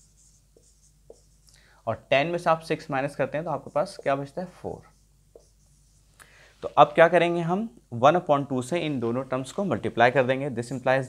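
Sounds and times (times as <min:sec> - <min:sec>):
marker scratching on whiteboard: 0:00.0 - 0:01.5, 0:02.3 - 0:07.2.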